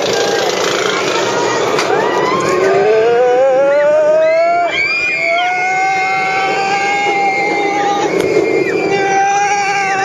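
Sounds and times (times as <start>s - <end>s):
riders screaming: 0.0s - 10.0s
roller coaster train rushing: 0.0s - 10.0s.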